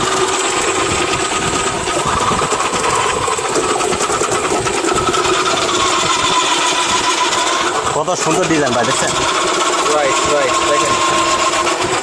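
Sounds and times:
food processor motor whine: 0.0 - 12.0
shredding disc rasping: 0.0 - 12.0.

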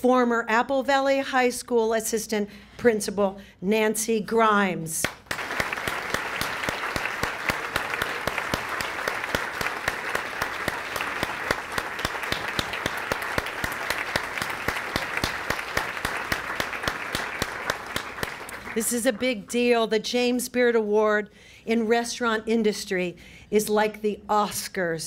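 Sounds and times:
audience applauding: 5.1 - 18.8.

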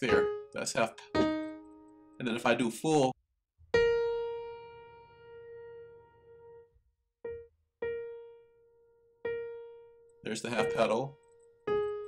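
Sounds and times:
piano note ringing: 0.0 - 2.7.

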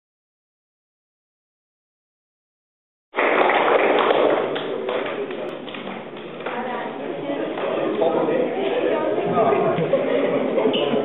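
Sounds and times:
audience applauding: 3.2 - 6.3.

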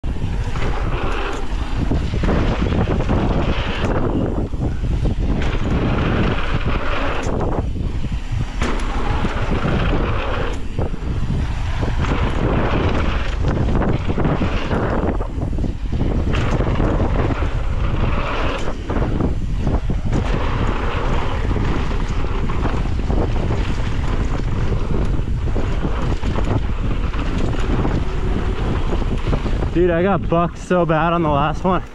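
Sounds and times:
bike knocks and rattles: 0.0 - 29.9
tyre noise on loose dirt: 0.0 - 31.9
wind rushing over microphone: 0.0 - 31.9.

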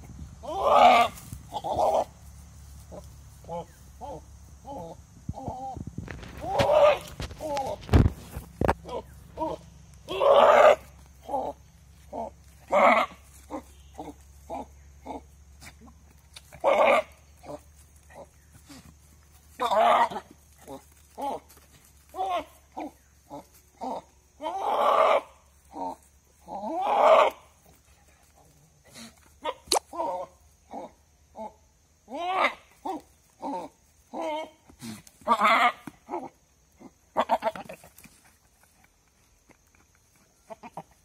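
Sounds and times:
goats grunting: 0.4 - 2.2, 2.8 - 41.0
goats bleating: 6.4 - 7.9, 8.8 - 15.2, 19.6 - 21.5.

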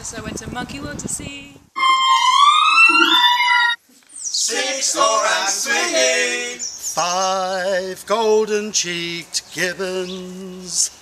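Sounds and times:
gibbon whooping: 1.8 - 3.8.

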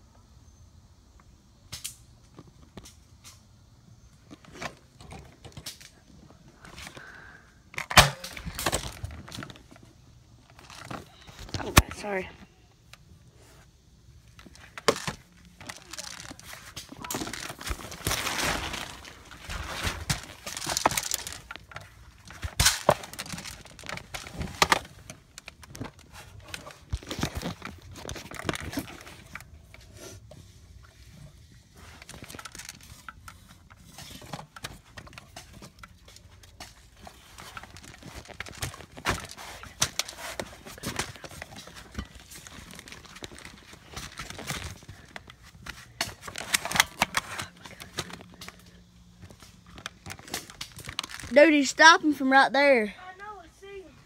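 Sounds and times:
camera rustling and scraping: 13.4 - 51.4.

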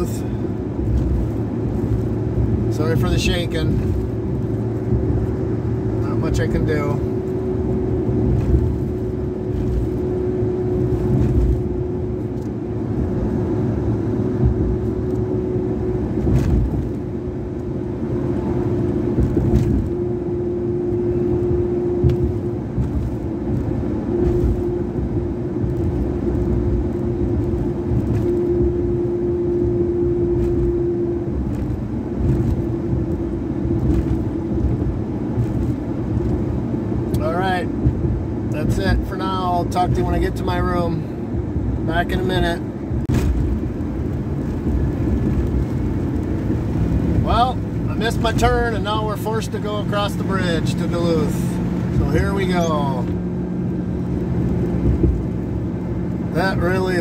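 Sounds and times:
truck road and engine rumble: 0.0 - 57.0.

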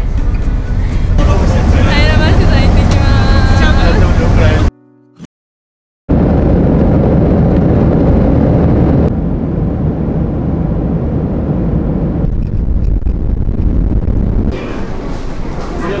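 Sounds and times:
lighter busy background noise: 14.5 - 16.0.

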